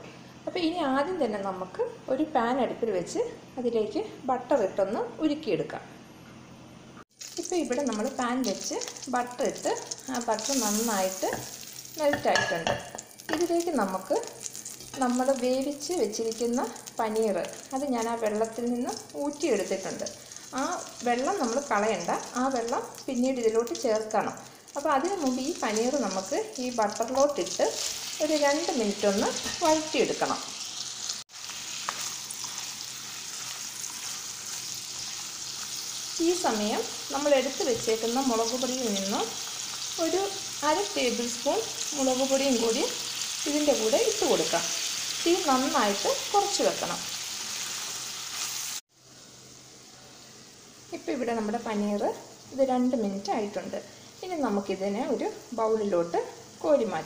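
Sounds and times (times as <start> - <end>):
woman speaking: 0.5 - 5.9, 7.4 - 14.3, 15.0 - 30.5, 51.0 - 57.0
butter and oil sizzling: 7.1 - 57.0.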